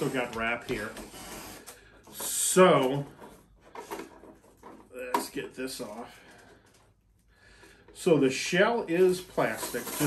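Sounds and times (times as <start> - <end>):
faint handling noises: 0.0 - 10.0.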